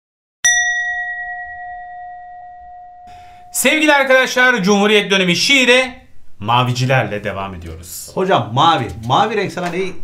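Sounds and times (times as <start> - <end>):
bell-like chime ringing: 0.4 - 3.6.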